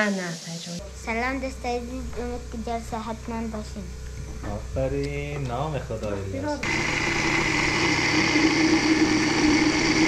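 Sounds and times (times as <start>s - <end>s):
blender motor humming and whining: 6.5s - 10.0s.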